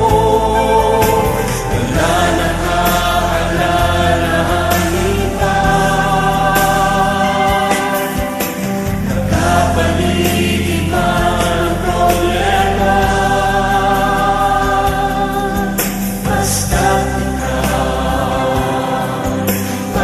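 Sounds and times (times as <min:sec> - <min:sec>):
instrumental accompaniment: 0:00.0 - 0:20.0
person singing worship song: 0:00.0 - 0:20.0.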